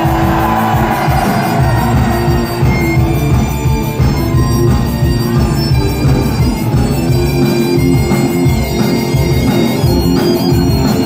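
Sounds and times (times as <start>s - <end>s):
driving drum beat: 0.0s - 11.0s
electric guitar: 0.0s - 11.0s
punk rock band playing: 0.0s - 11.0s.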